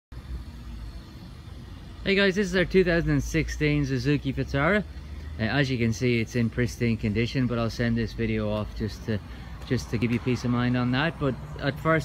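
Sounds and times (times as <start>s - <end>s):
road traffic rumble: 0.1s - 12.0s.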